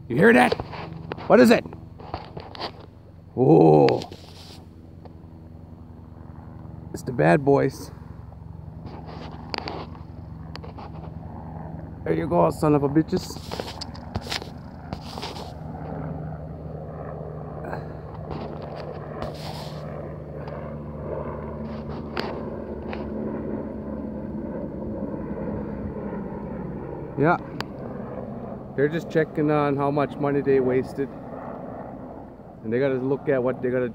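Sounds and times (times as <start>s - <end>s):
aircraft engine drone: 0.0s - 33.9s
distant helicopter rotor hum: 0.0s - 33.9s.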